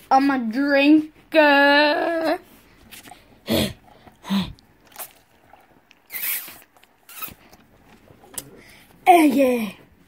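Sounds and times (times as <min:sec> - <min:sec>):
slurping through a drinking straw: 0:02.9 - 0:09.0.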